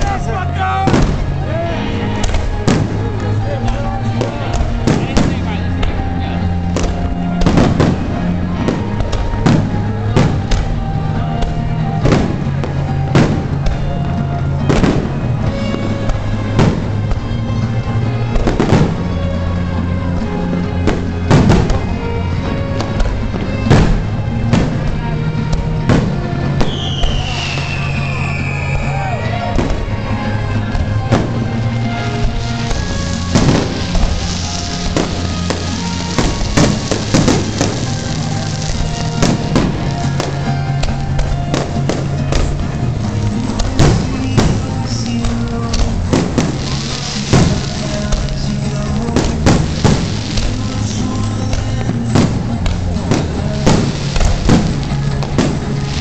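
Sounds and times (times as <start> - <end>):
loud pop music: 20.1 - 56.0
hissing crackle: 20.8 - 56.0
firework shells bursting: 20.9 - 28.8, 29.6 - 56.0
falling firework whistle: 26.6 - 29.8, 43.8 - 45.3.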